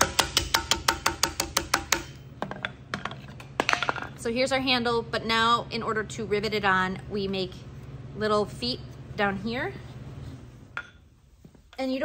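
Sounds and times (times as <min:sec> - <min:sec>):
mallet striking metal: 0:00.0 - 0:02.2.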